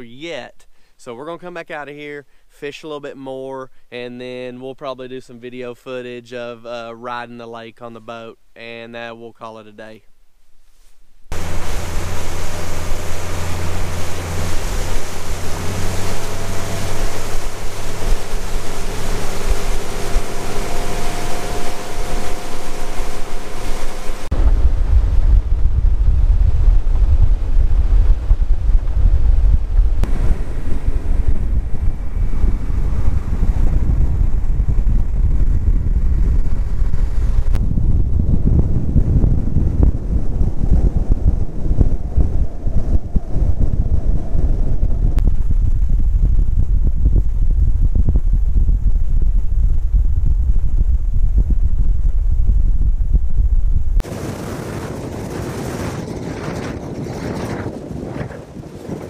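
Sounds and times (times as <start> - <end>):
outboard motor running: 11.3 - 24.4
water rushing past hull: 11.3 - 45.5
wind buffeting microphone: 11.3 - 59.0.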